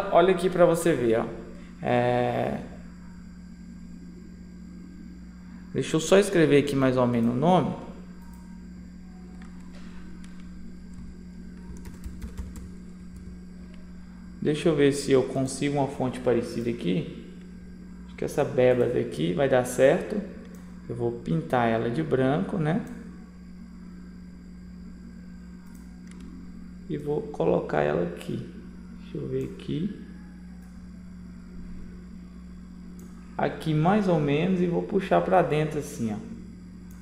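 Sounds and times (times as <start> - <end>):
steady low hum: 0.0 - 37.0
keyboard keys typing: 11.6 - 13.2.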